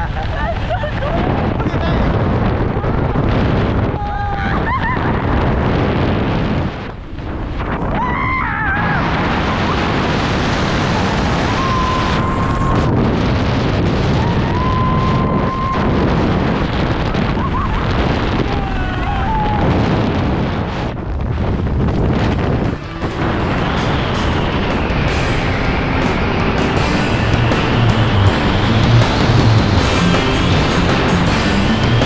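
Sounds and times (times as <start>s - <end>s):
wind rushing over microphone: 0.0s - 32.0s.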